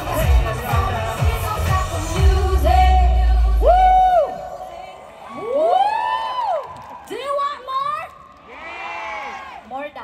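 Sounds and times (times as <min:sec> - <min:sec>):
concert crowd cheering: 0:03.4 - 0:09.9.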